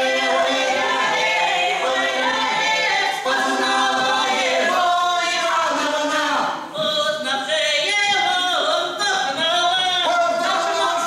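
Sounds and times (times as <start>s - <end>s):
vocal ensemble singing in harmony: 0.0s - 11.0s.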